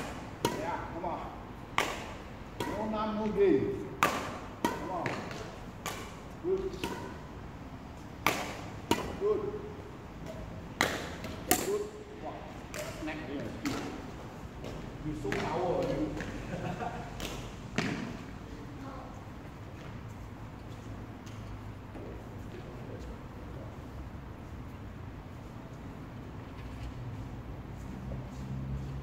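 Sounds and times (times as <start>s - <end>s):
racket striking shuttlecock: 0.0s - 1.0s, 1.7s - 7.3s, 8.0s - 12.0s, 12.6s - 16.3s, 17.2s - 18.2s.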